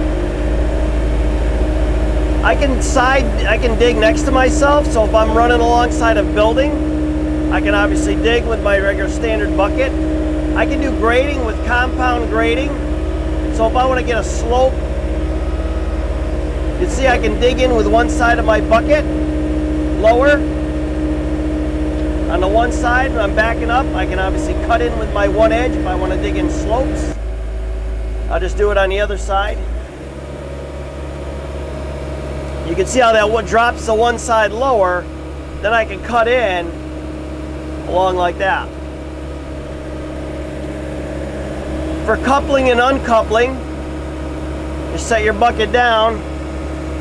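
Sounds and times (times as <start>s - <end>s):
excavator engine and hydraulics: 0.0s - 47.0s.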